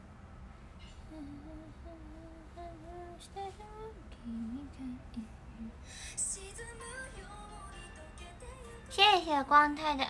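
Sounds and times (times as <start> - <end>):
woman humming: 1.1 - 3.2.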